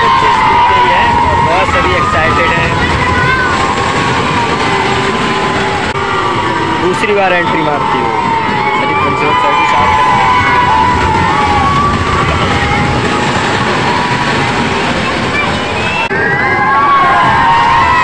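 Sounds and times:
children shouting and screaming: 0:00.0 - 0:18.0
fairground ride rumble: 0:00.0 - 0:18.0.

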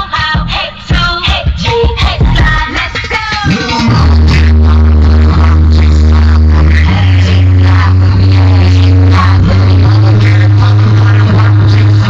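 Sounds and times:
electronic dance music: 0:00.0 - 0:12.0
heavy bass notes: 0:03.5 - 0:12.0.

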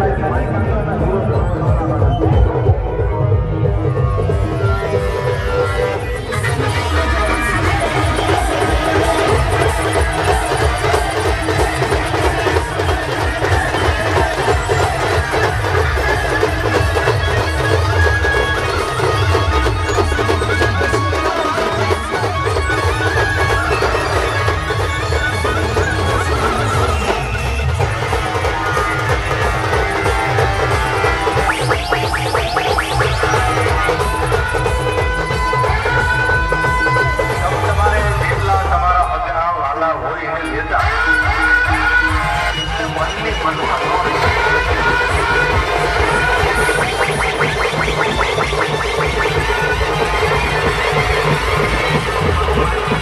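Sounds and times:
band music through loudspeakers: 0:00.0 - 0:53.0.

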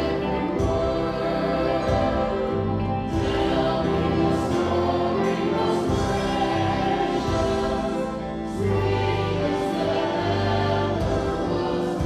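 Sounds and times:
congregation singing a hymn: 0:00.0 - 0:12.0
drums: 0:00.0 - 0:12.0
guitars: 0:00.0 - 0:12.0
piano: 0:00.0 - 0:12.0.

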